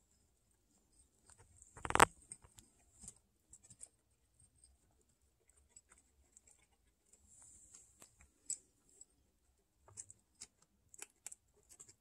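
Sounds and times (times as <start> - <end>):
guinea pigs crunching dry food: 1.2 - 12.0.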